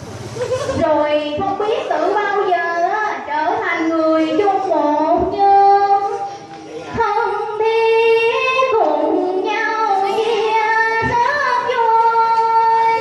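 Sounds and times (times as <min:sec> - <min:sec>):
woman singing into a microphone: 0:00.8 - 0:13.0.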